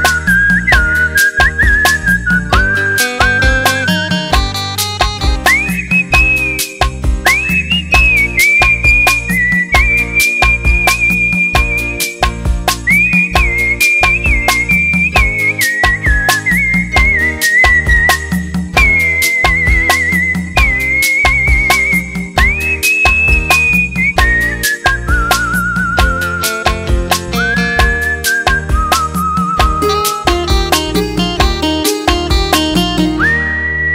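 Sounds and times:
person whistling a melody: 0.0 - 4.4, 5.2 - 30.6, 32.7 - 33.9
band accompaniment with beat and bass: 0.0 - 33.9.

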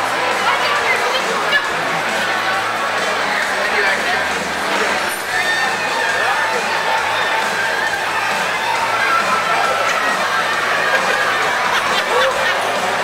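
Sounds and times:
background music: 0.0 - 13.0
crowd chatter: 0.0 - 13.0.

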